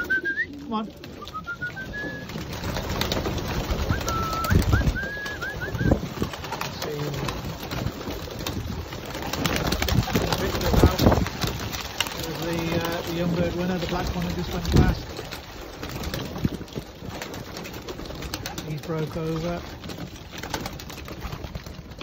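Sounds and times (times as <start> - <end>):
pigeon wings flapping: 0.0 - 22.0
pigeons cooing: 0.0 - 22.0.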